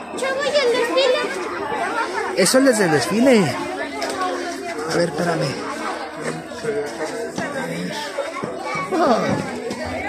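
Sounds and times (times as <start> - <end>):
children's voices and chatter: 0.0 - 10.0.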